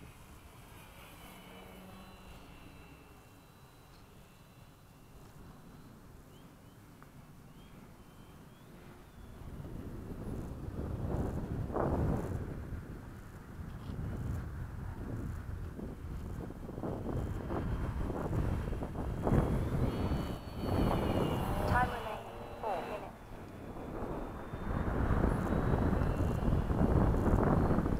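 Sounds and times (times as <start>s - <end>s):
electric motor whine: 0.0s - 27.9s
wind buffeting microphone: 0.0s - 27.9s.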